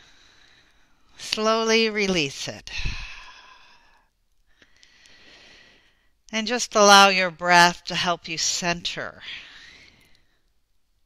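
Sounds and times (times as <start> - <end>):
woman exhaling slowly: 2.7 - 4.0.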